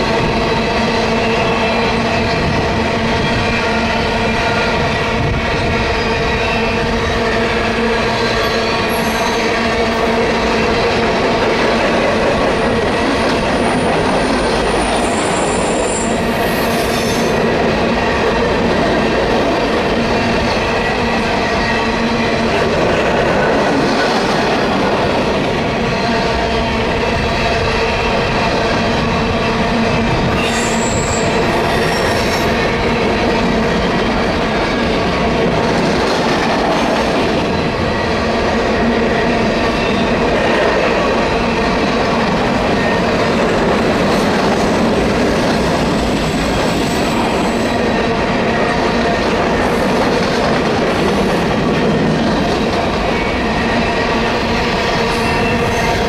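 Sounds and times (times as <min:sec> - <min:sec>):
train wheels rumbling and clacking: 0:00.0 - 0:56.0.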